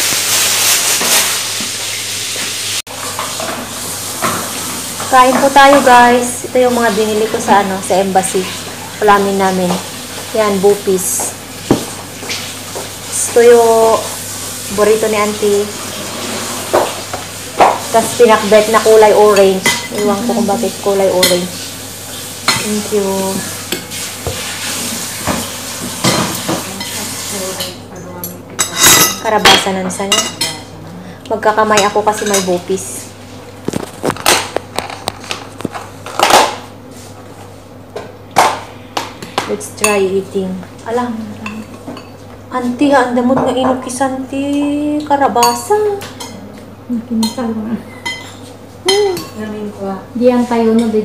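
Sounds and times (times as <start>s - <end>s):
food sizzling in a pan: 0.0s - 27.9s
cutlery and dishes clinking: 19.3s - 21.5s, 28.6s - 30.7s.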